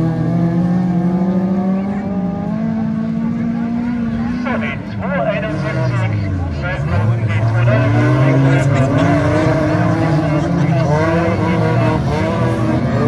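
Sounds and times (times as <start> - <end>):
race car engines revving: 0.0 - 13.0.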